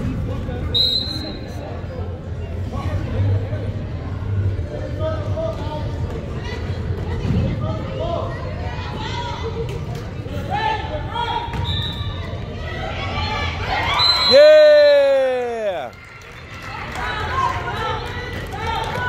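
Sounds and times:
spectators chatter: 0:00.0 - 0:19.0.

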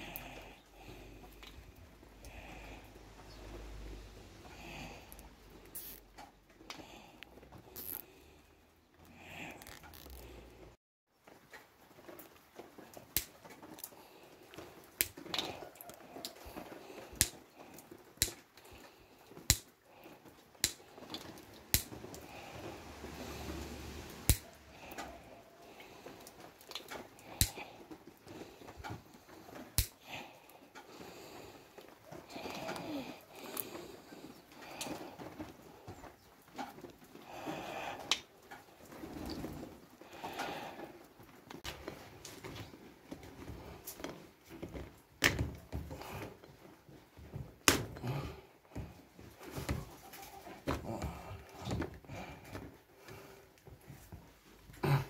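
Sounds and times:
side cutters snipping zip ties: 0:05.7 - 0:06.0, 0:07.8 - 0:08.1, 0:09.6 - 0:10.3, 0:18.2 - 0:18.4, 0:20.6 - 0:20.8, 0:21.7 - 0:22.0, 0:24.2 - 0:24.5, 0:29.8 - 0:30.0.

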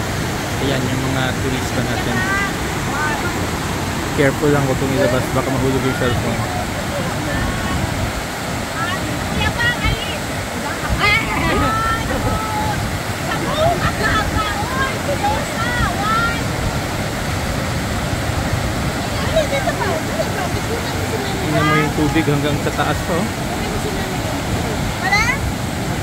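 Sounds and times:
river rapids: 0:00.0 - 0:26.0
waterfall rushing: 0:00.0 - 0:26.0
people's voices: 0:00.6 - 0:17.9, 0:18.5 - 0:25.5.

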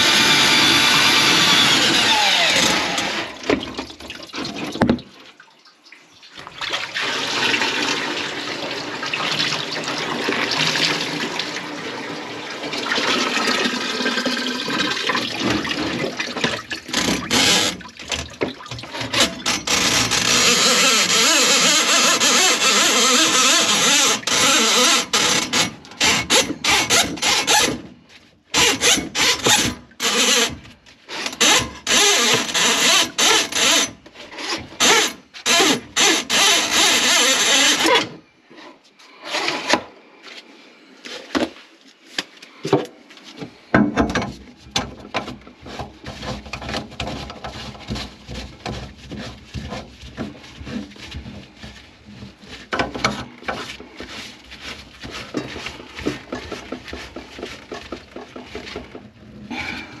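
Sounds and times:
scraping and knocks in drain: 0:00.9 - 0:05.4, 0:06.3 - 0:11.6, 0:12.5 - 0:38.2, 0:42.7 - 1:00.0
rasping rubbing strokes: 0:18.8 - 0:39.8, 0:45.2 - 0:59.9.

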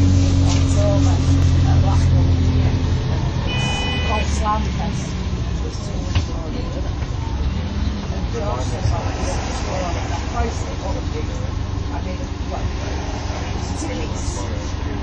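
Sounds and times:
bus diesel engine droning: 0:00.0 - 0:15.0
brief electronic tone: 0:03.5 - 0:04.2.

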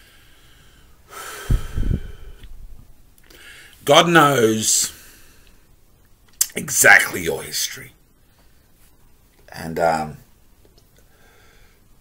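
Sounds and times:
man breathing heavily: 0:00.0 - 0:02.5, 0:11.1 - 0:12.0
air buffeting microphone: 0:01.4 - 0:03.0.

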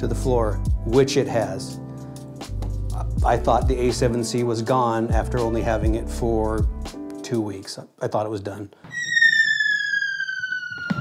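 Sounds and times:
falling whistle sound effect: 0:08.9 - 0:11.0.

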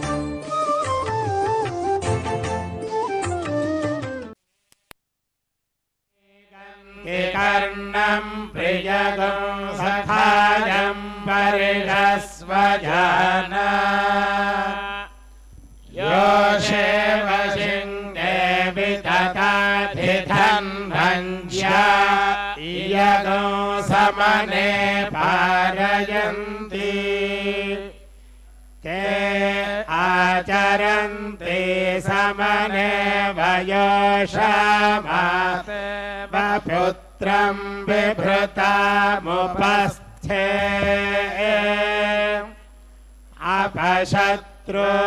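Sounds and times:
mantras chanted: 0:06.2 - 0:15.2, 0:15.9 - 0:45.0.

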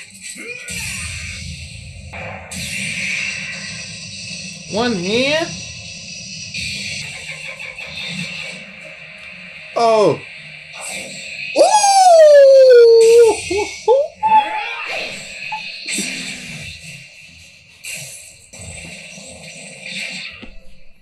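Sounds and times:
music: 0:00.0 - 0:11.6
long loud falling cry: 0:11.6 - 0:14.6
shorter cries: 0:11.6 - 0:14.6.

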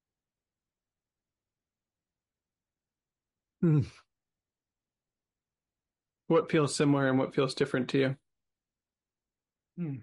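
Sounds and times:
man's short wordless vocal sound: 0:09.8 - 0:10.0.

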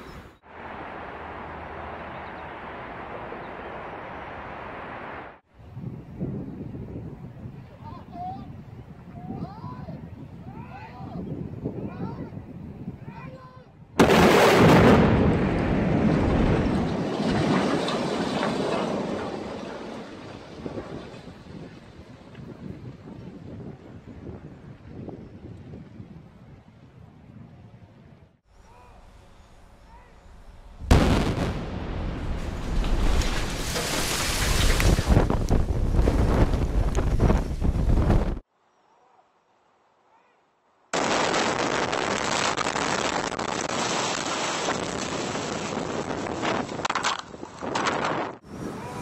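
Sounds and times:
explosive blast: 0:14.0 - 0:17.8, 0:30.8 - 0:35.3
loud rumbling of collapsing structure: 0:14.0 - 0:21.6, 0:30.9 - 0:37.3.

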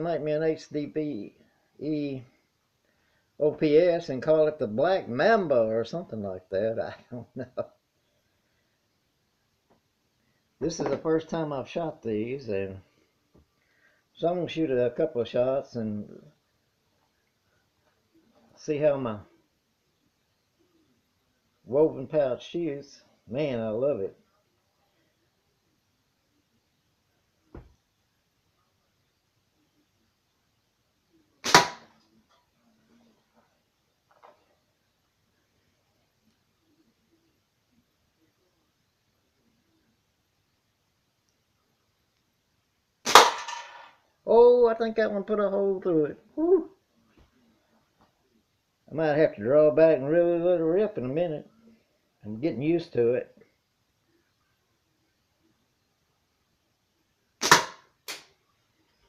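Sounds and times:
ball striking target crack: 0:31.4 - 0:31.9, 0:43.1 - 0:43.9, 0:57.4 - 0:58.2
slingshot snap: 0:31.4 - 0:31.9, 0:57.4 - 0:58.3.

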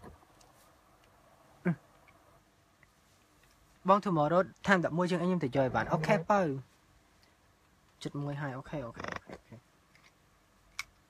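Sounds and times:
man's creaky voice: 0:05.5 - 0:06.5, 0:08.7 - 0:09.6.

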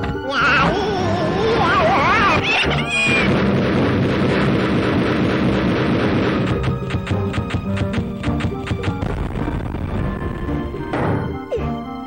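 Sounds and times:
film music: 0:00.0 - 0:12.0
steady rushing noise: 0:03.2 - 0:10.2.

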